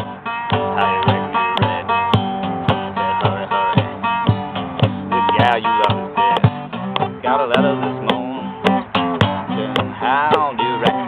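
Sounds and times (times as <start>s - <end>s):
acoustic guitar blues strumming: 0.0s - 11.0s.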